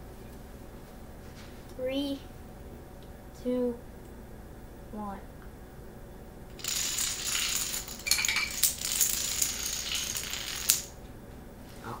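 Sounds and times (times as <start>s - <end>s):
dominoes clattering on wooden floor: 6.6s - 10.9s.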